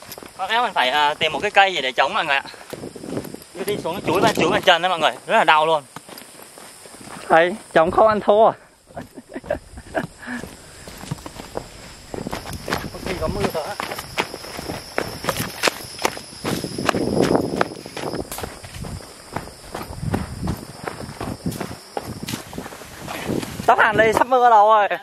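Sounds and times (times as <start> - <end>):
footsteps on dirt trail: 0.0 - 24.5
leaves and twigs crunching: 8.9 - 24.5.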